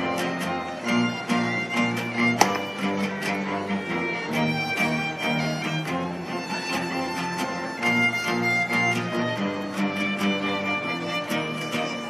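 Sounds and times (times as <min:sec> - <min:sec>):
acoustic guitar strumming: 0:00.0 - 0:12.0
violins playing: 0:00.0 - 0:12.0.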